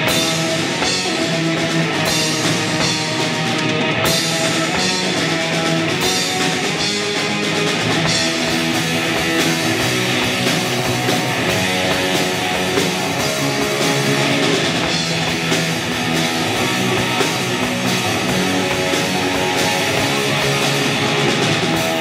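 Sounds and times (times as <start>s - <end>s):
bass guitar: 0.0s - 22.0s
drum kit: 0.0s - 22.0s
electric guitar: 0.0s - 22.0s.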